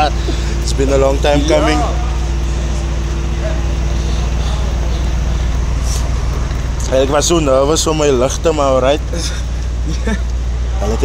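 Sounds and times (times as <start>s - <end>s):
road traffic rumble: 0.0s - 11.0s
vehicle engines idling: 0.0s - 11.0s.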